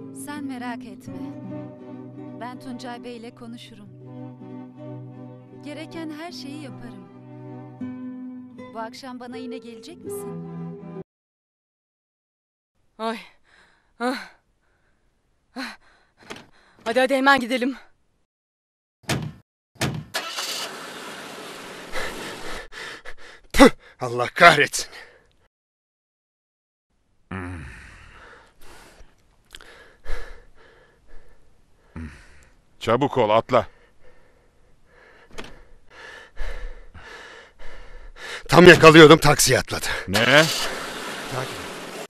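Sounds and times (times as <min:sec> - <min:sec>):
faint breath: 0:13.4 - 0:16.8, 0:27.6 - 0:32.6, 0:33.7 - 0:38.5
dull thump on seat: 0:19.1 - 0:20.1
woman sighing: 0:27.3 - 0:28.5
car door clicking: 0:35.3 - 0:35.6
person speaking: 0:38.4 - 0:41.8.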